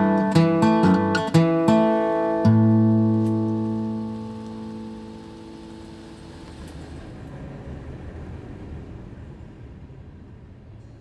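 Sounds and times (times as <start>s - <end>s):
acoustic guitar chord ringing: 0.0s - 7.1s
low rumble: 2.5s - 11.0s.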